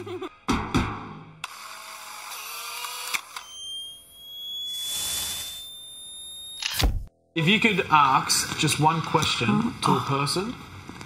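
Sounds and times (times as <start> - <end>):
music: 0.0 - 1.4.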